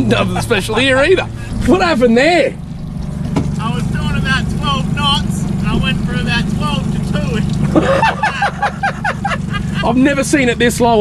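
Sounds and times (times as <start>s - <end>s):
outboard motor running: 0.0s - 11.0s
people talking and laughing: 0.0s - 11.0s.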